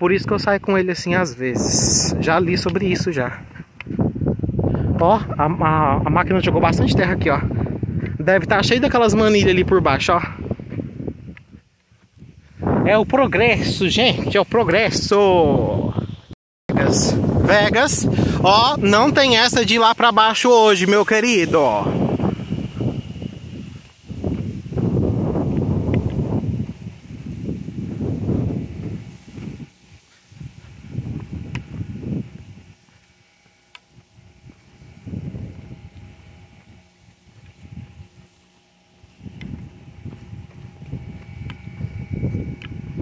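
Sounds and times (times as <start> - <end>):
wind buffeting microphone: 0.0 - 43.0
faint steady hum: 0.4 - 43.0.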